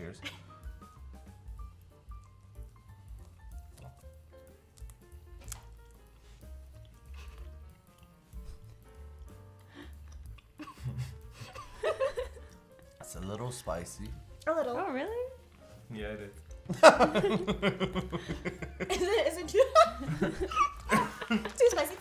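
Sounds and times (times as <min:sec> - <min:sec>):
light background music: 0:00.0 - 0:22.0
crunchy snack being chewed: 0:03.1 - 0:08.2
person laughing: 0:10.6 - 0:12.4, 0:16.7 - 0:21.9.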